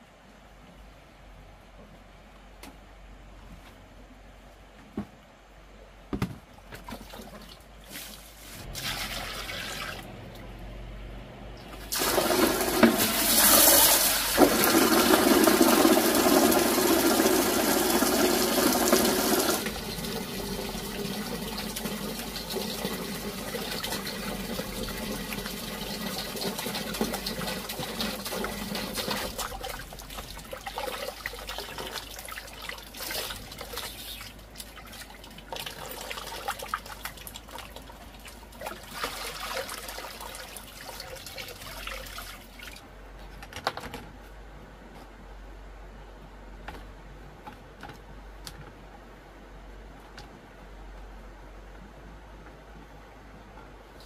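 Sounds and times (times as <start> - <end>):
water poured into plastic basin: 6.9 - 10.1, 11.7 - 42.8.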